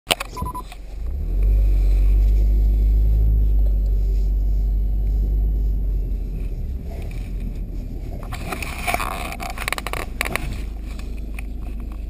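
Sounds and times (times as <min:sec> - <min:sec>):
touchscreen clicks: 0:00.1 - 0:00.8
low rumble inside car cabin: 0:00.1 - 0:12.0
short electronic beeps: 0:00.3 - 0:00.8.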